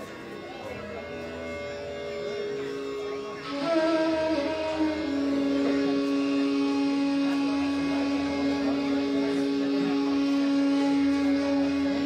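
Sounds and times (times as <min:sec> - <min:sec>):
faint melodic lines: 0:00.0 - 0:12.0
indian classical drone: 0:00.0 - 0:12.0.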